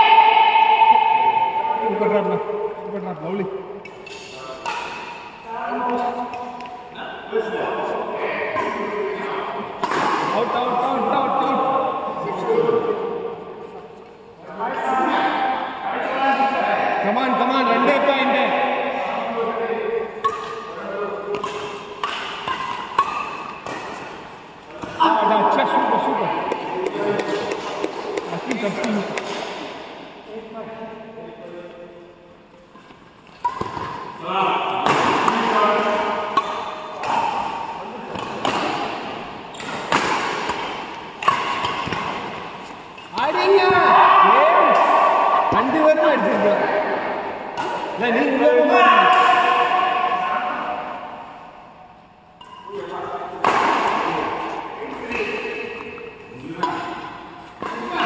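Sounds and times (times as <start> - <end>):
players' voices: 0.0 - 58.0
racket striking shuttlecock: 3.8 - 6.8, 9.7 - 10.4, 20.2 - 25.0, 26.4 - 29.9, 32.8 - 34.2, 34.8 - 43.8, 52.4 - 58.0.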